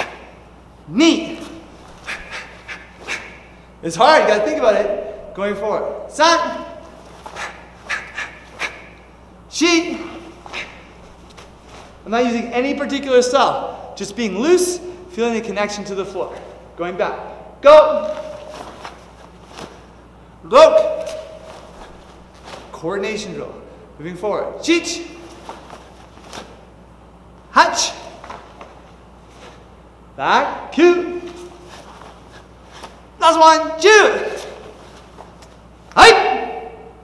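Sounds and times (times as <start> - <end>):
cloth swishing: 1.2 - 3.5, 9.9 - 12.5, 18.0 - 20.0, 20.8 - 23.0, 25.1 - 26.7, 31.2 - 33.2, 34.2 - 35.7
sharp breaths: 1.7 - 3.8, 7.0 - 9.1, 9.9 - 12.0.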